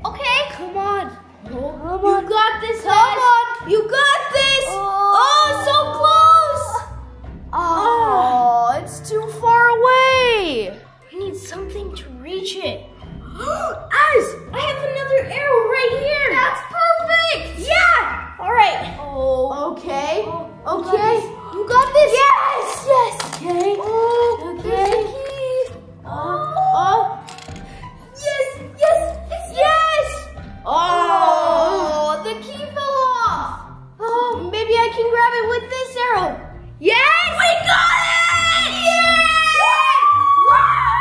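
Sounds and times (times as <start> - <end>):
background music: 0.0 - 41.0
children's excited exclamations: 36.9 - 41.0
boys cheering: 37.2 - 41.0.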